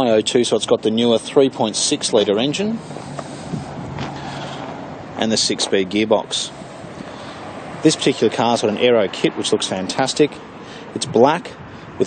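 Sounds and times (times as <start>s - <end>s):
outdoor background noise: 0.0s - 12.0s
car engine idling: 2.2s - 8.6s.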